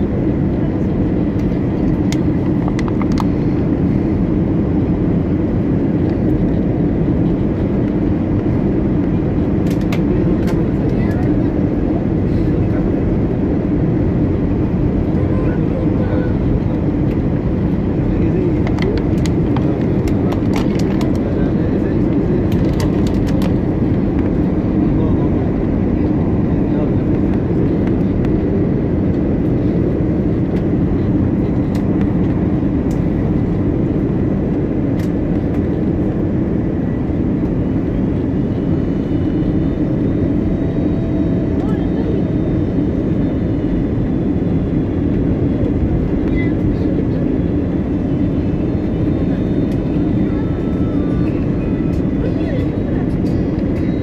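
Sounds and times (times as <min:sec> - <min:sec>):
aircraft cabin drone: 0:00.0 - 0:54.0.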